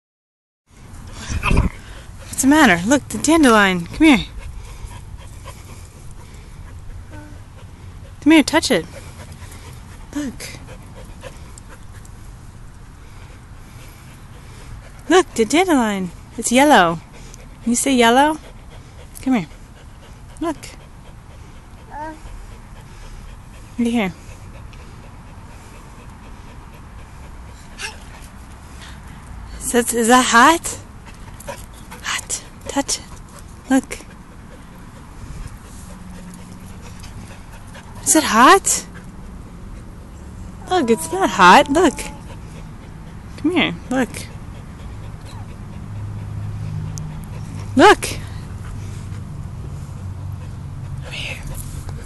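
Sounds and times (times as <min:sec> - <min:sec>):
outdoor background hiss: 0:00.7 - 0:52.0
toddler whimpering: 0:07.1 - 0:07.5, 0:21.9 - 0:22.3, 0:27.8 - 0:28.1, 0:40.6 - 0:42.6.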